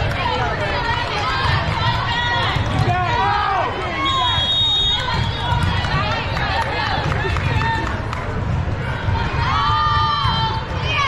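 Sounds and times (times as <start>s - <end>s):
crowd voices in a hall: 0.0s - 11.0s
referee's whistle: 4.0s - 5.4s.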